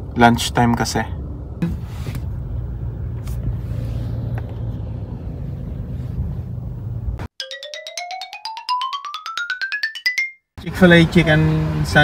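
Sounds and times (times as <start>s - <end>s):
xylophone-like notes climbing: 7.4s - 10.5s.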